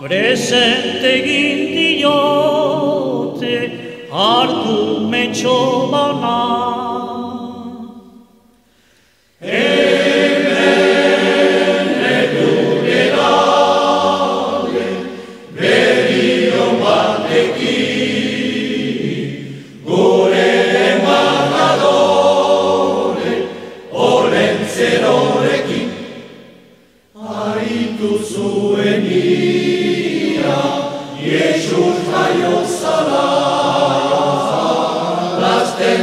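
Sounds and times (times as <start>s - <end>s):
choir singing: 0.0s - 8.1s, 9.4s - 36.0s.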